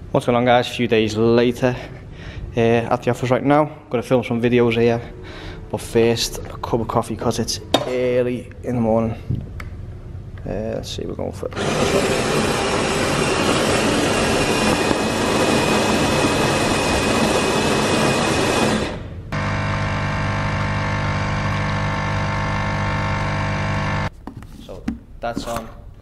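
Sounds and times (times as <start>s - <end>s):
coffee machine grinding beans: 11.6s - 24.1s
coffee machine pump humming: 11.6s - 24.1s.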